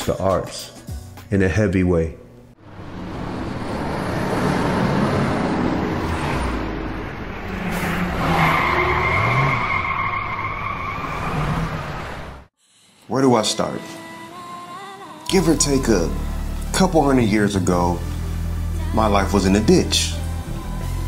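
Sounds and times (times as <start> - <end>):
car engine: 2.6 - 12.5
rushing tyre noise: 2.6 - 12.5
high tyre squeal: 2.8 - 12.4.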